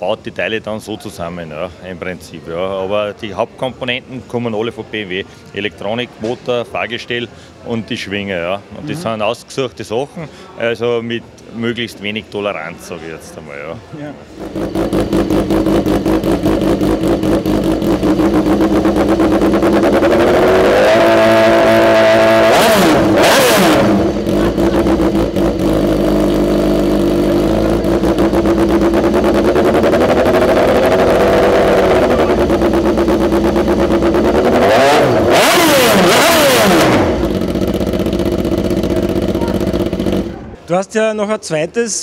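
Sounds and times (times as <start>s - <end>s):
motorcycle engine idling and revving: 14.3s - 40.6s.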